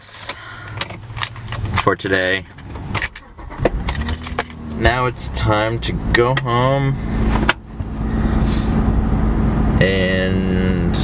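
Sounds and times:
car engine rumble: 0:00.0 - 0:11.0
constant low hum: 0:00.0 - 0:11.0
road noise: 0:00.0 - 0:11.0.

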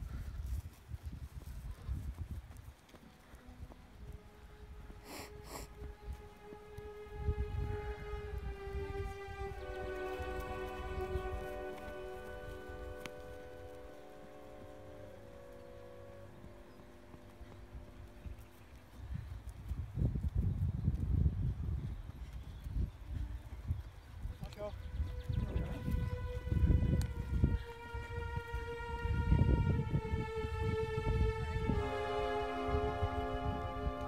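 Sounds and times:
held organ-like chords: 0:03.4 - 0:19.6, 0:24.3 - 0:34.0
low rumbling: 0:04.0 - 0:20.4, 0:24.7 - 0:34.0.

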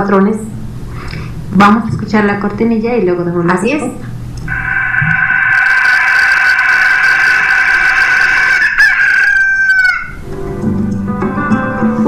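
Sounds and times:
rooster crowing: 0:04.5 - 0:10.2.

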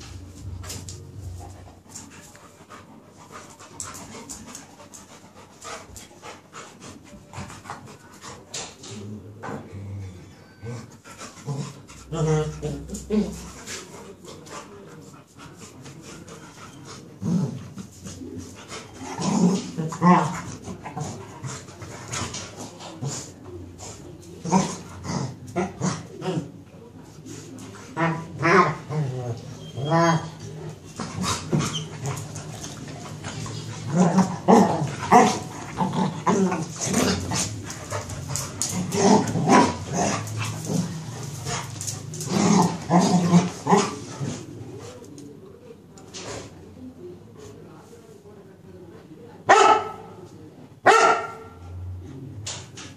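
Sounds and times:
paws scuffling on tiled floor: 0:00.0 - 0:09.2, 0:10.7 - 0:45.4
dogs panting: 0:00.7 - 0:08.7, 0:34.9 - 0:42.8
dogs growling: 0:02.7 - 0:14.8, 0:16.2 - 0:26.7, 0:27.7 - 0:45.1
dogs barking: 0:49.5 - 0:50.0, 0:50.8 - 0:51.6.

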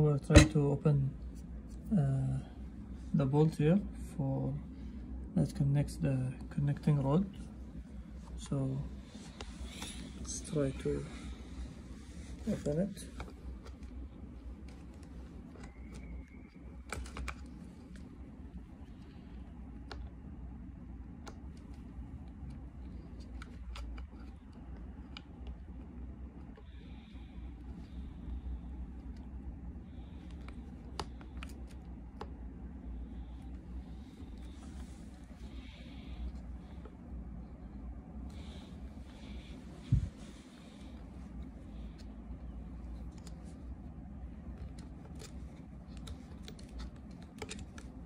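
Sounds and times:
low background hum: 0:00.0 - 0:48.0
clicks and scrapes of plastic parts: 0:12.4 - 0:18.1, 0:21.2 - 0:27.0, 0:29.9 - 0:32.4, 0:44.4 - 0:48.0.

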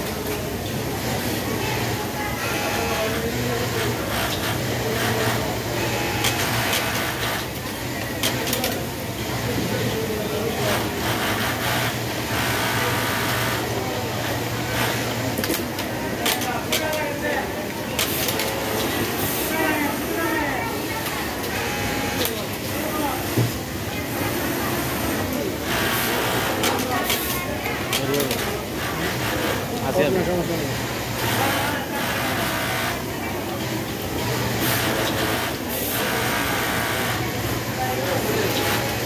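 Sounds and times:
sewing machine whirring: 0:00.1 - 0:22.6, 0:24.1 - 0:39.0.

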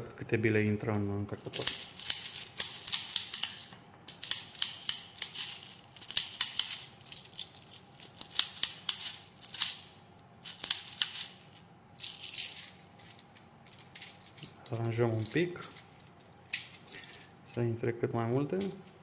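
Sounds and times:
plastic pellets clicking and rattling: 0:01.4 - 0:17.4.

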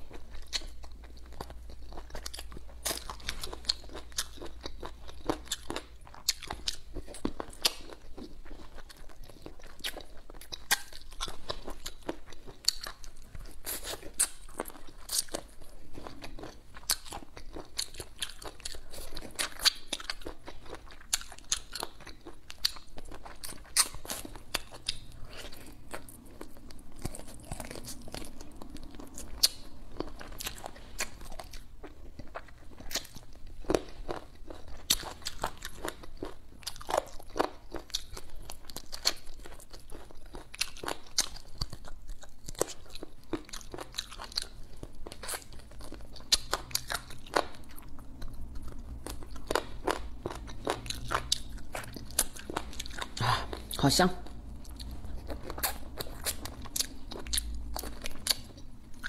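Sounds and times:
chewing with sharp crunches: 0:00.0 - 0:59.0.

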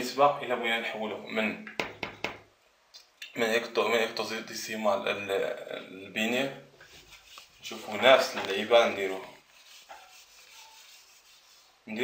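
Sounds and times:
rubbing strokes on whiteboard: 0:06.8 - 0:12.0.

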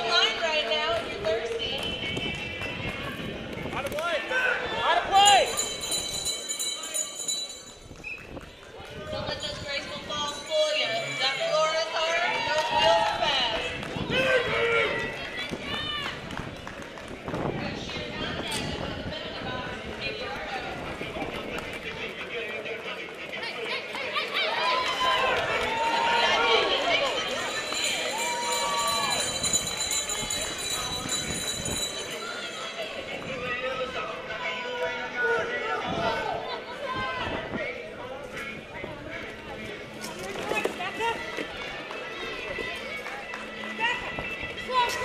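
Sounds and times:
crowd voices: 0:00.0 - 0:45.0.

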